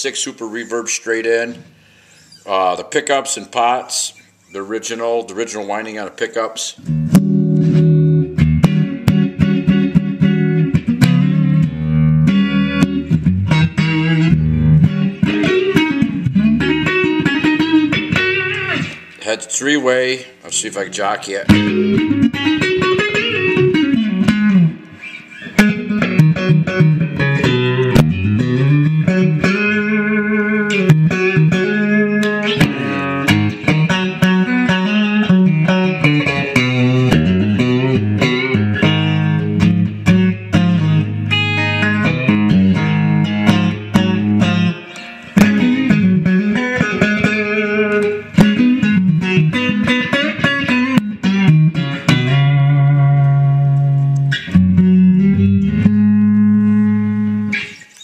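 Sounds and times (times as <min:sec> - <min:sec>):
electric guitar lead lines: 0:06.7 - 0:58.0.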